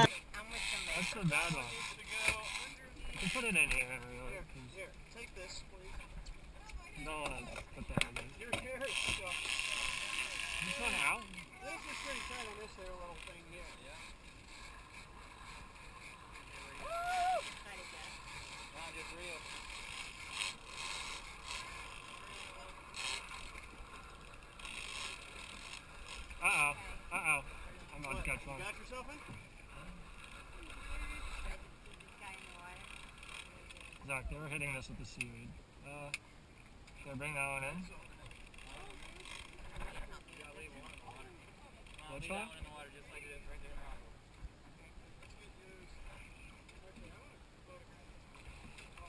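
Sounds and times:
faint voices: 0.0 - 35.3.

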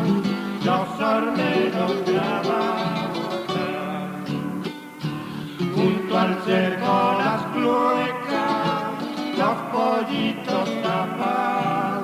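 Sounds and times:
acoustic guitars playing folk music: 0.0 - 12.0.

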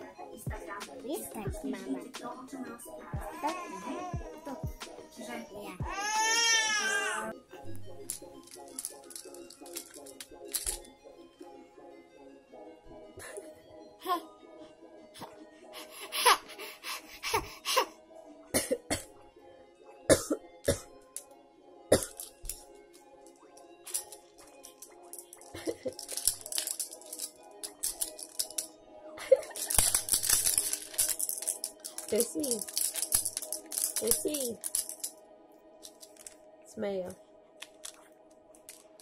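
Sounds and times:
soft background music: 0.0 - 39.0
woman coughing: 18.5 - 19.1, 20.1 - 20.9, 21.9 - 22.2
faint rattly clicks: 23.9 - 28.7, 29.5 - 35.1.

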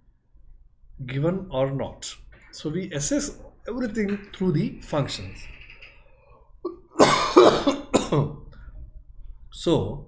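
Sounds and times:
man coughing: 6.7 - 8.5.

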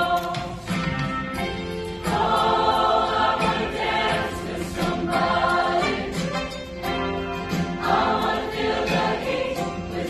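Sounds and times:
choir singing: 0.0 - 10.0
musical accompaniment: 0.0 - 10.0.

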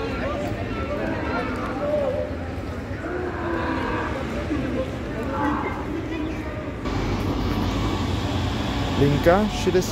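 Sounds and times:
low traffic rumble: 0.0 - 9.9.

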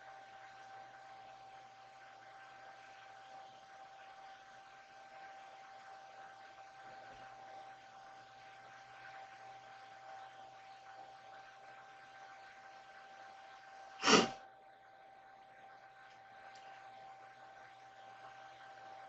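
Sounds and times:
thin steady whine: 0.0 - 19.0
person sneezing: 14.0 - 14.4.

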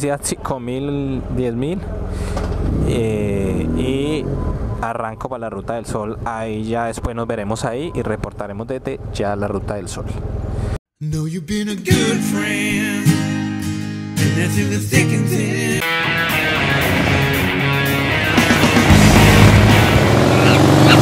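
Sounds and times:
background music: 11.3 - 21.0.

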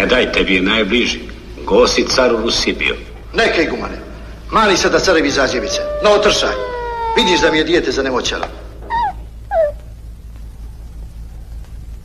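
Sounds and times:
whimpers sliding down in pitch: 5.3 - 7.8, 8.9 - 9.8.

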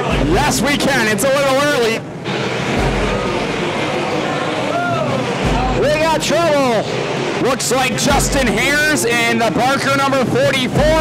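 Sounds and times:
race car engines roaring: 0.0 - 11.0.

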